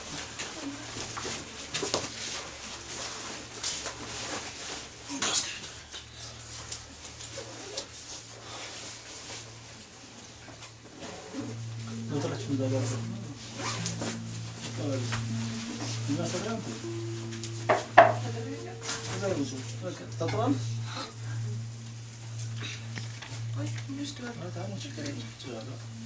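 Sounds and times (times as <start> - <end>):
steady low hum: 11.3 - 26.0
people speaking: 11.5 - 22.9, 23.5 - 26.0.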